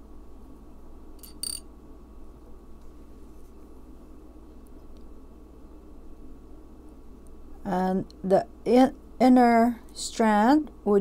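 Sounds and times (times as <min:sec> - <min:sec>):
faint room hum: 0:00.0 - 0:11.0
beads clinking together: 0:01.2 - 0:01.6.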